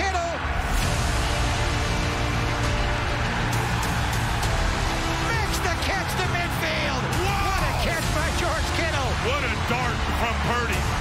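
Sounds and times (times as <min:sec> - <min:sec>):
dramatic orchestral music: 0:00.0 - 0:11.0
stadium crowd cheering: 0:00.0 - 0:11.0
fans whooping and yelling: 0:02.3 - 0:11.0.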